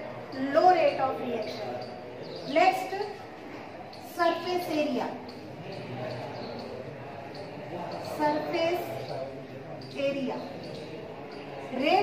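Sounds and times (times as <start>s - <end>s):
marker writing on a whiteboard: 0.1s - 12.0s.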